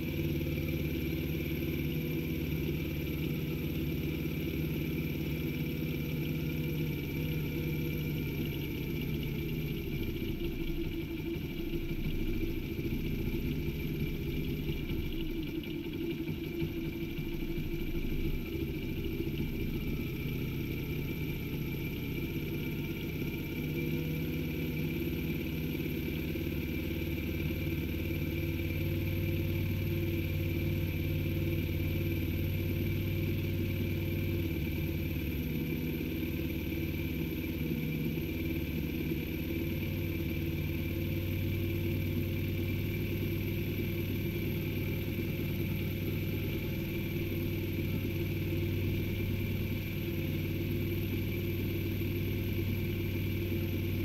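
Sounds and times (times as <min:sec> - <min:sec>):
small engine idling: 0:00.0 - 0:54.0.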